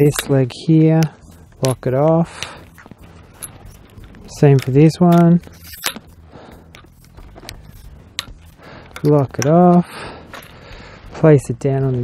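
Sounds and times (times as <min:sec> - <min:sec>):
light handling noise: 0:00.0 - 0:10.6
tripod leg clicks: 0:02.4 - 0:10.6.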